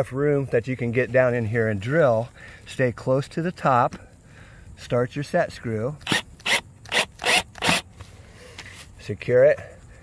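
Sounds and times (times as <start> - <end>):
cordless drill driving a screw: 6.0 - 7.8.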